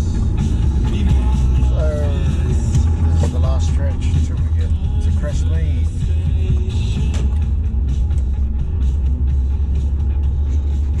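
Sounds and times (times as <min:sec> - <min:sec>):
car road and engine rumble: 0:00.0 - 0:11.0
music playing: 0:00.0 - 0:11.0.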